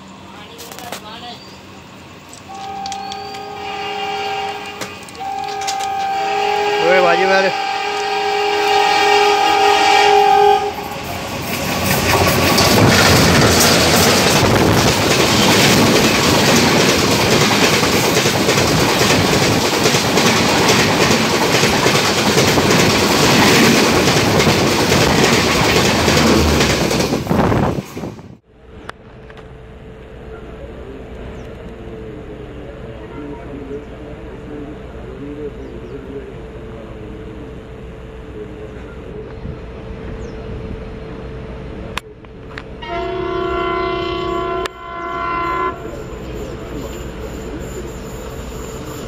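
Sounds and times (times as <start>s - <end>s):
steady train rumble: 0.0s - 49.0s
trains passing with wind rush: 0.0s - 49.0s
train horn: 2.5s - 11.2s, 42.8s - 46.1s.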